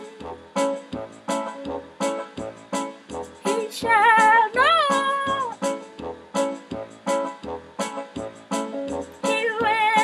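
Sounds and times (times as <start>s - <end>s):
woman singing: 0.0s - 0.3s, 3.4s - 5.6s, 9.2s - 10.0s
keyboard backing track with beat: 0.0s - 10.0s.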